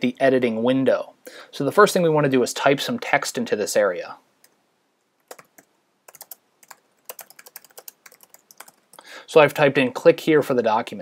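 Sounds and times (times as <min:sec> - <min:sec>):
computer keyboard keys clicking: 0:05.3 - 0:09.0.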